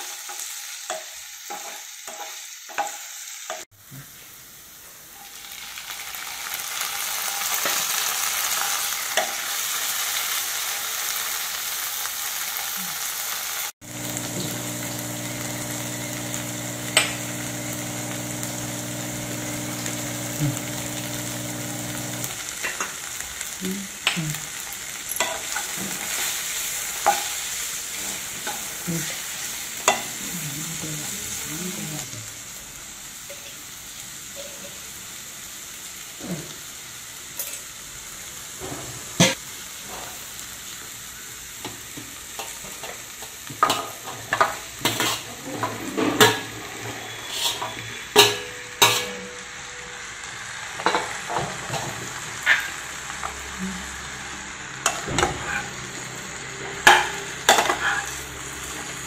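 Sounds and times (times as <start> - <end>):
vegetables sizzling in oil: 0.0 - 59.0.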